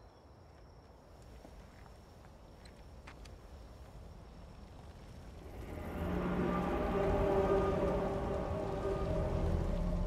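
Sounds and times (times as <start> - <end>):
rain-like hiss: 1.1 - 10.0
low rumble: 4.9 - 10.0
dramatic film score chords: 5.4 - 10.0.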